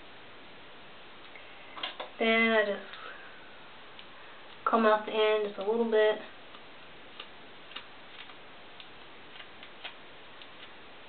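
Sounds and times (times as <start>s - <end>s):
comb clicking through hair: 6.5s - 10.8s.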